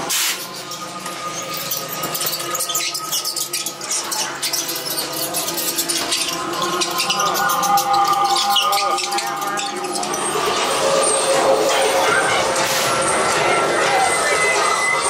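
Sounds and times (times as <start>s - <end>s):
fast clicking and rattling effects: 0.5s - 12.6s
held drone tones: 0.7s - 15.0s
voices: 1.1s - 15.0s.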